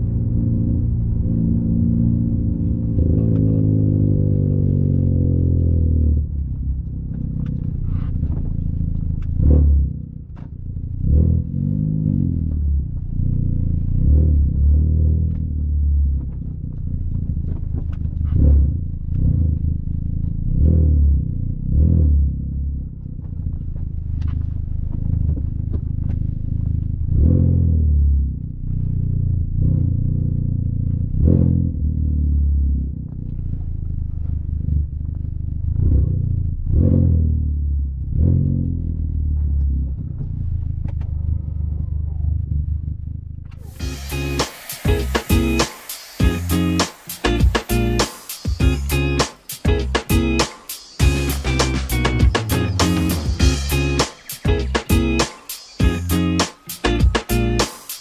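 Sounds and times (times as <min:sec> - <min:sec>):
car engine accelerating: 0:00.0 - 0:57.8.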